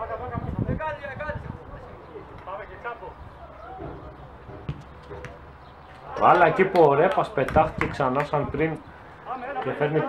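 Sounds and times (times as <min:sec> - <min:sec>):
players calling out: 0:03.3 - 0:10.0.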